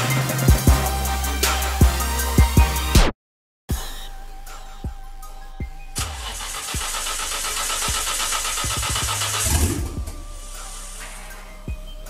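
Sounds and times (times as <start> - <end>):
background music with steady beat: 0.0 - 3.1, 3.7 - 12.0
engine cranked by starter: 6.0 - 10.2.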